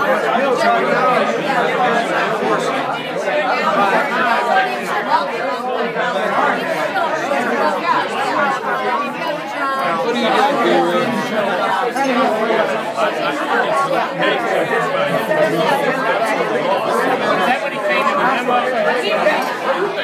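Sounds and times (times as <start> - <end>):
crowd talking: 0.0 - 20.0.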